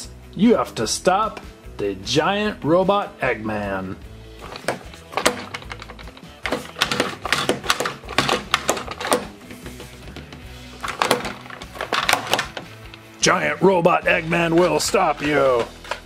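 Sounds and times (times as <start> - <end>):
background music: 0.0 - 16.0
plastic toy clicking and knocking: 4.4 - 9.4, 10.8 - 13.0.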